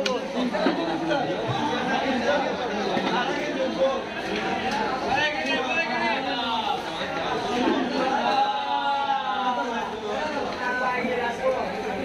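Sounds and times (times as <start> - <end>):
chatter of people talking: 0.0 - 12.0.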